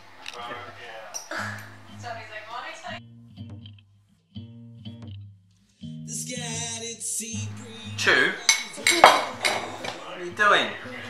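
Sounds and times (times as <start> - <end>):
spoon clinking ceramic bowl: 8.4 - 10.1.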